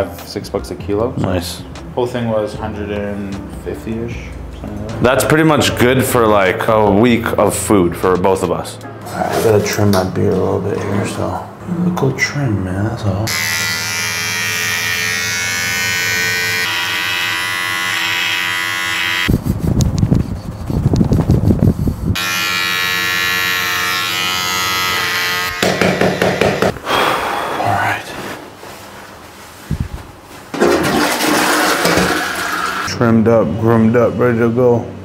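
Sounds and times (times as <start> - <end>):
electric beard trimmer buzzing: 13.3 - 19.3, 22.2 - 26.7.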